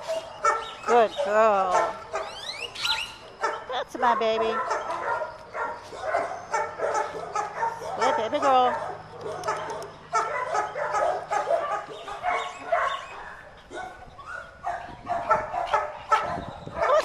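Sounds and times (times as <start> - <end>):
dog barking and yipping: 0.0 - 17.0.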